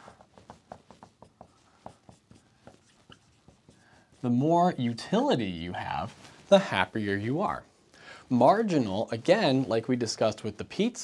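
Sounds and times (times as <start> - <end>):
marker writing on whiteboard: 0.0 - 4.8.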